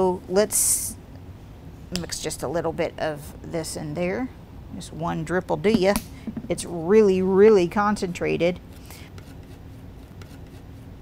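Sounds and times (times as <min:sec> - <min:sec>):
palette knife scraping paper: 0:08.7 - 0:10.9.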